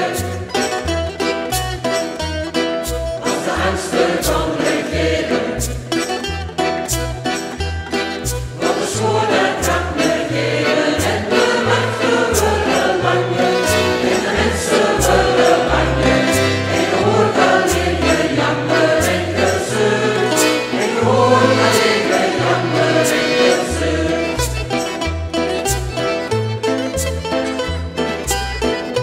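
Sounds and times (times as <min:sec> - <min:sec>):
mixed choir singing: 0:00.0 - 0:00.5, 0:03.2 - 0:05.8, 0:08.6 - 0:24.6
low bass notes: 0:00.0 - 0:29.0
piano-accordion: 0:00.0 - 0:29.0
ticking beat: 0:00.0 - 0:29.0.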